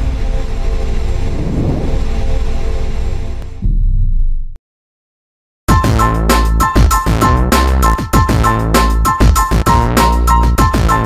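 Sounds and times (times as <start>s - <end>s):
cinematic drone music: 0.0s - 3.7s.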